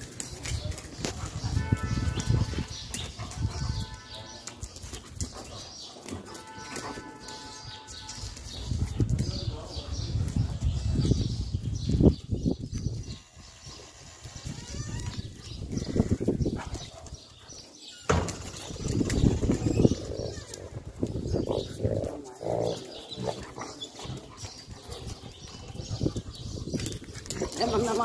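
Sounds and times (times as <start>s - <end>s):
dogs growling: 19.5s - 28.0s.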